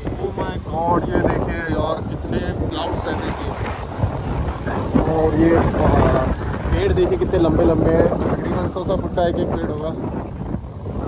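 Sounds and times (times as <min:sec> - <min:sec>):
man talking: 0:00.0 - 0:03.7, 0:04.7 - 0:10.0
wind buffeting microphone: 0:00.0 - 0:11.0.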